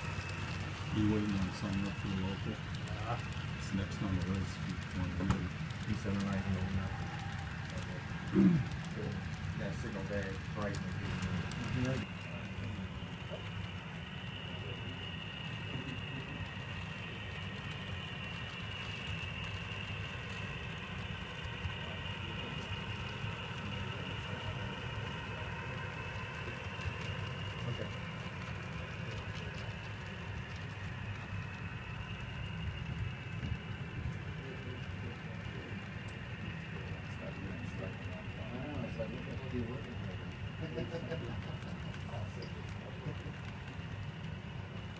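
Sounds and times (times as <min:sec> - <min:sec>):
faint high whine: 0:00.0 - 0:44.9
model train wheels rumbling: 0:00.0 - 0:44.9
small ticks: 0:00.0 - 0:44.9.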